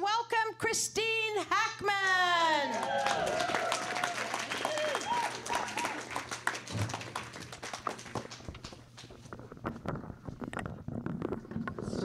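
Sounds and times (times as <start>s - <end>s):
audience applauding: 2.6s - 9.2s.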